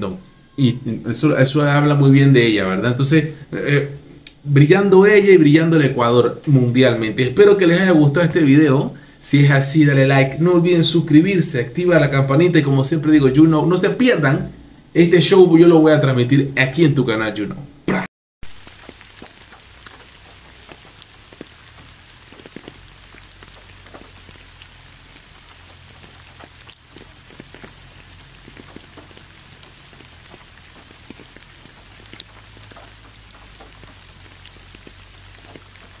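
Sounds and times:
light rain hissing: 0.0 - 36.0
raindrop ticks: 2.6 - 13.8, 18.4 - 36.0.

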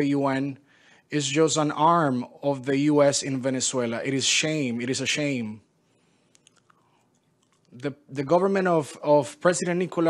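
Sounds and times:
man speaking: 0.0 - 5.7, 7.7 - 10.0
mouth clicks: 6.3 - 7.9.

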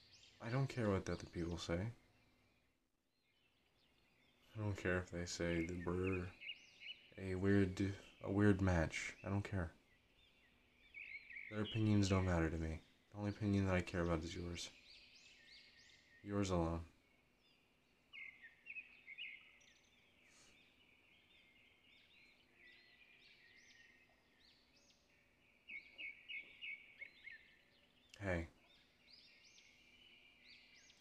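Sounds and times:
faint bird chirps: 0.0 - 31.0.

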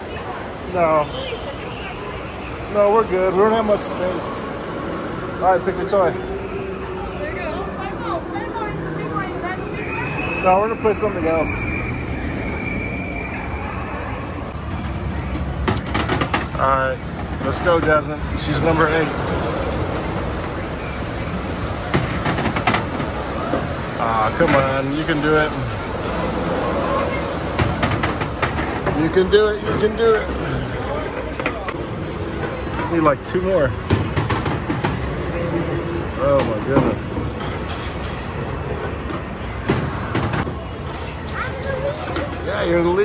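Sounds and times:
balls rolling and knocking: 21.5 - 31.8.

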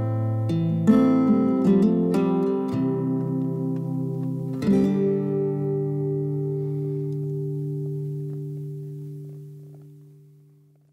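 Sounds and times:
acoustic guitar chord ringing: 0.0 - 10.6.

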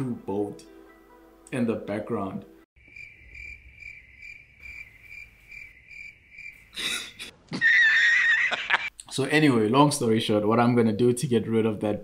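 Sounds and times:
cricket chirping: 2.8 - 7.3
man cackling laugh: 6.8 - 8.9.

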